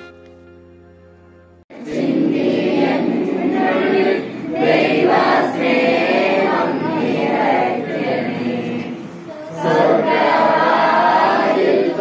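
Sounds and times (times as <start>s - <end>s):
group singing a hymn: 1.7s - 12.0s.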